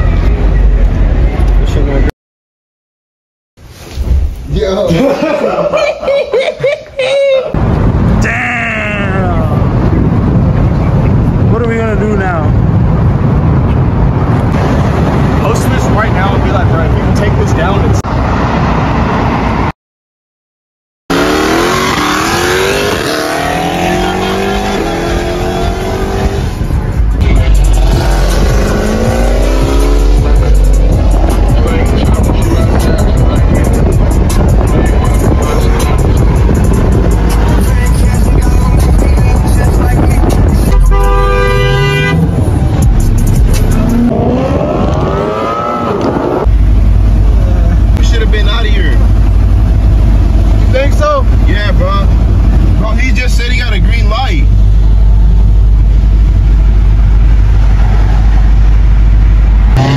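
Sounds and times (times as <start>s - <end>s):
road noise: 0.0s - 2.1s, 3.6s - 19.7s, 21.1s - 59.9s
heavy low rumble: 7.6s - 19.7s, 21.5s - 59.9s
car engine accelerating: 21.1s - 59.9s.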